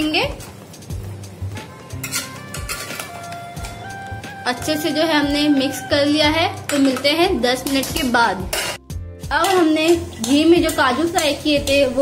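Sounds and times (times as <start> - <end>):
background music: 0.0 - 12.0
spoon clinking against pot: 2.0 - 3.8, 6.6 - 11.9.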